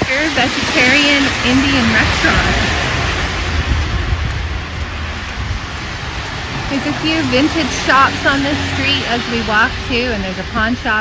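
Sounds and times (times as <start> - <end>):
car tyres hissing on wet road: 0.0 - 11.0
low unsteady rumble: 0.0 - 11.0.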